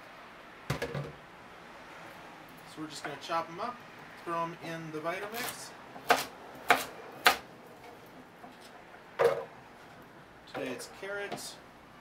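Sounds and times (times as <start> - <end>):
knife chopping on wooden board: 5.4 - 7.4.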